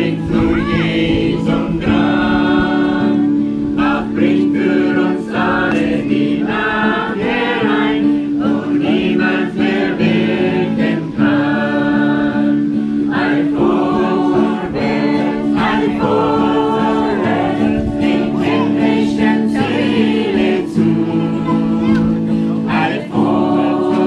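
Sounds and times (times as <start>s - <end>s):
acoustic guitar: 0.0s - 24.0s
group singing a hymn: 0.0s - 24.0s.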